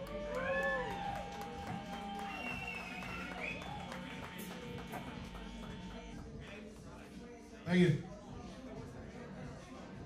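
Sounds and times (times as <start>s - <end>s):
people whooping: 0.0s - 4.9s.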